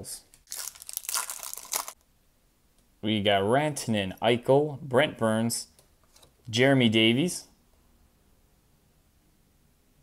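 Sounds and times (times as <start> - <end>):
plastic wrapper tearing and crinkling: 0.3 - 2.0.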